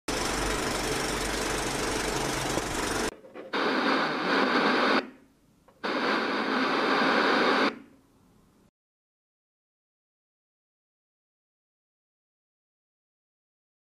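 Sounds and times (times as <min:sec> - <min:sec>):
noisy hiss: 0:00.4 - 0:08.7
tv static bursts: 0:02.8 - 0:05.1, 0:05.8 - 0:07.8.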